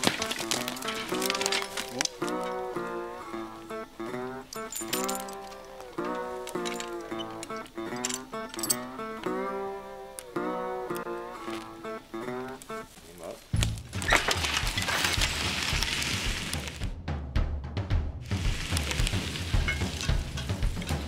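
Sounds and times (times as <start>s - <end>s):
background music with bending notes: 0.0s - 21.0s
low thuds: 13.5s - 21.0s.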